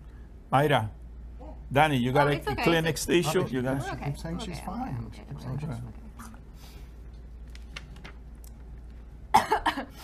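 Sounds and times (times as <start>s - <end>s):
woman coughing: 9.3s - 10.0s.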